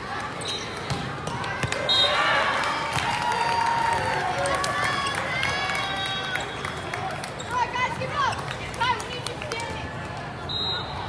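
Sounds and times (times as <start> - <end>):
shoe squeaks and shouts: 0.4 - 0.9.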